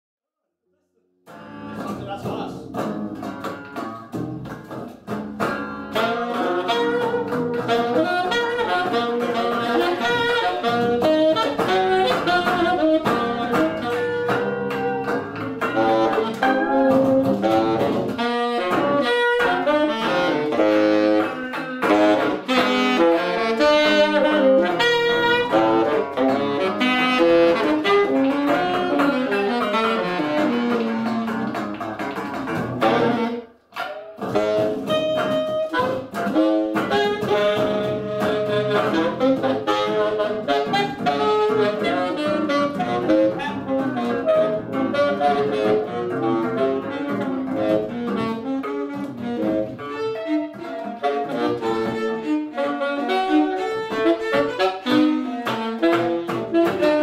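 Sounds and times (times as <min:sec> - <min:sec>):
electric guitar: 0:01.3 - 0:57.0
saxophone: 0:01.3 - 0:57.0.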